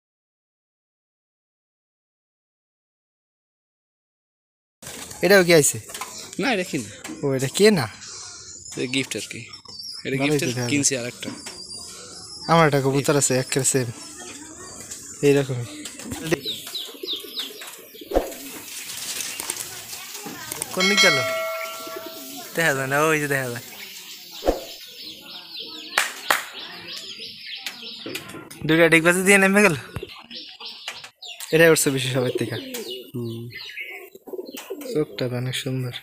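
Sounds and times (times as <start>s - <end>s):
pigeons cooing: 14.1s - 20.1s, 20.8s - 23.3s, 31.9s - 35.7s
small bird chirps: 20.4s - 28.2s.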